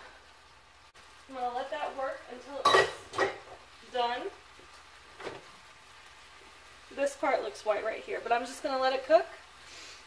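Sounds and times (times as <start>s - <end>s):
chicken sizzling in grill pan: 0.0s - 10.0s.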